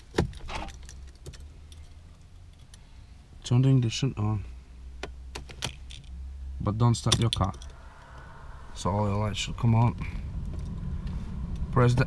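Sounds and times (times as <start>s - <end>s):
keys jangling: 7.1s - 7.8s.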